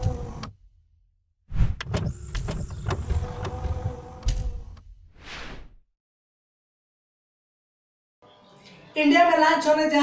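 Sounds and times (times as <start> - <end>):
mechanical whirr: 0.0 - 0.6, 1.6 - 4.9.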